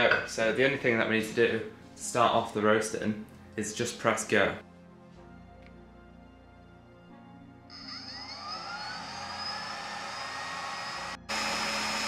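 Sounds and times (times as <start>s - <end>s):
faint background music: 0.0s - 7.7s
blower fan whining: 7.7s - 12.0s.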